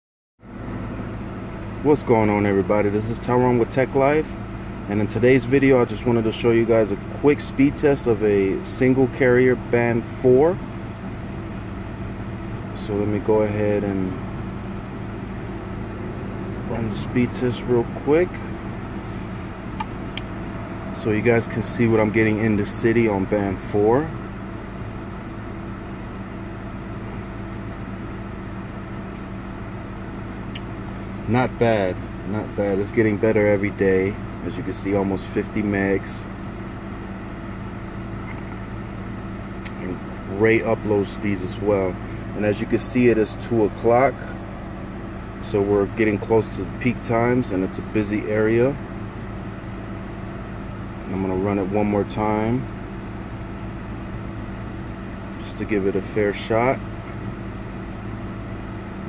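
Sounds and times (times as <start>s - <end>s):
car cabin hum and air noise: 0.5s - 59.0s.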